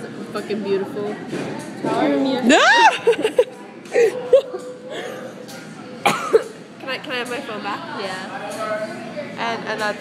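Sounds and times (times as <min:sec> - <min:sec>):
person coughing: 0:06.1 - 0:06.5.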